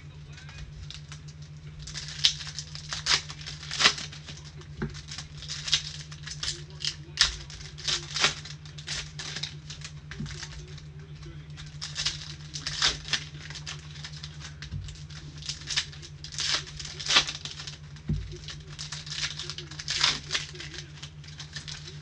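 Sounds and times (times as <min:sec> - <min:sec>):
foil wrappers crinkling and tearing: 0:00.0 - 0:22.0
steady low hum: 0:00.0 - 0:22.0.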